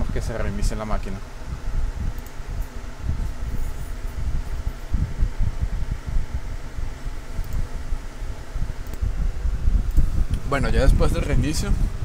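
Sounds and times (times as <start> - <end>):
low rumbling microphone noise: 0.0 - 12.0.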